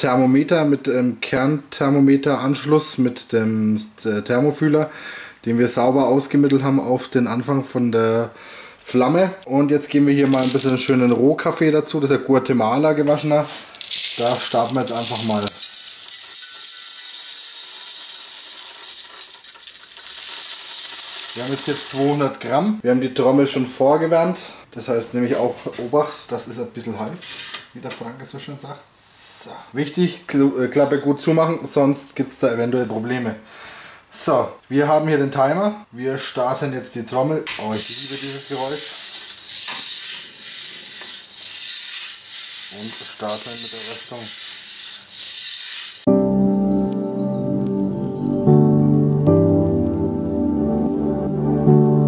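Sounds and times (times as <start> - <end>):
coffee beans tumbling in roaster drum: 13.8 - 22.3, 37.7 - 46.1
gas stove burner hissing: 20.6 - 22.3, 37.5 - 46.1.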